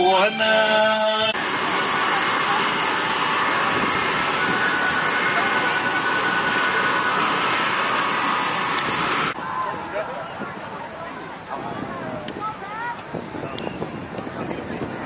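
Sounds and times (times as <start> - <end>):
singing and music: 0.0 - 1.4
outdoor noise hiss: 0.8 - 14.2
faint voices: 1.7 - 15.0.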